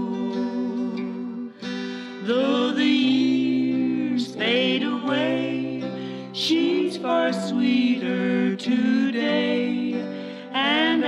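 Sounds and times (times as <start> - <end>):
acoustic guitar: 0.0 - 11.0
women singing in harmony: 0.0 - 11.0.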